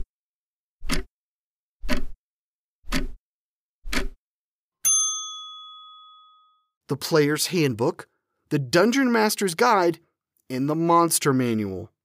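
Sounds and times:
bell-like ding: 0:04.8 - 0:06.8.

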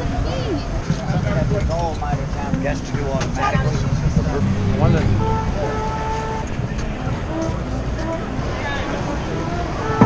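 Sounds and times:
street traffic rumble: 0:00.0 - 0:10.0
horn-like held note: 0:04.3 - 0:06.7.

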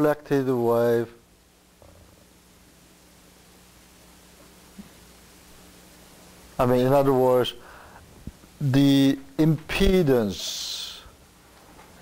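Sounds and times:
man speaking: 0:00.0 - 0:01.2, 0:06.6 - 0:07.6, 0:08.6 - 0:11.1
faint steady hum: 0:00.0 - 0:12.0.

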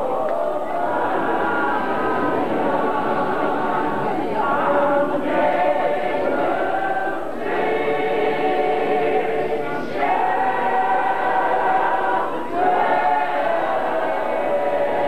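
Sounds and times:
choir singing a hymn: 0:00.0 - 0:15.0.

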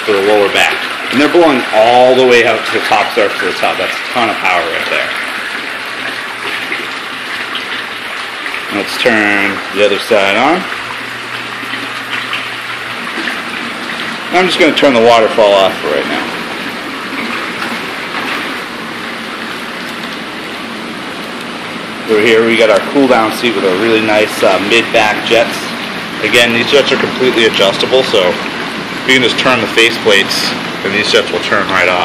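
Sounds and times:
hot tub jets churning water: 0:00.0 - 0:32.0
water streams pouring: 0:00.0 - 0:32.0.

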